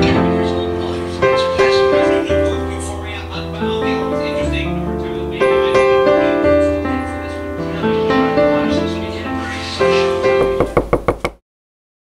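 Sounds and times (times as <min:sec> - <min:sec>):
sharp knocks: 0:10.4 - 0:11.4.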